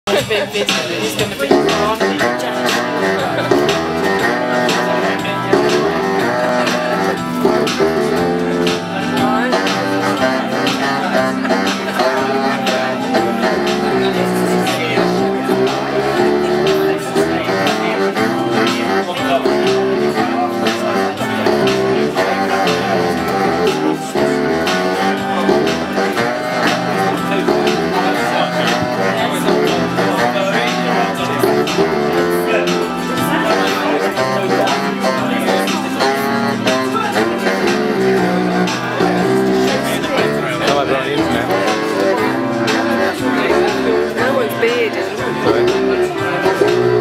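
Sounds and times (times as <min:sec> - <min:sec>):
live music in a small room: 0:00.1 - 0:47.0
plucked guitar: 0:00.1 - 0:47.0
saxophone playing held notes: 0:01.4 - 0:47.0.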